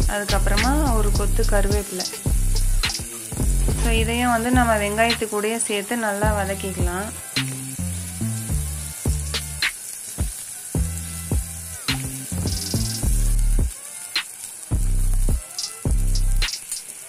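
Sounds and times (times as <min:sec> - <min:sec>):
background music with beat: 0:00.0 - 0:05.3, 0:06.2 - 0:17.0
onions sizzling in a pan: 0:00.0 - 0:17.0.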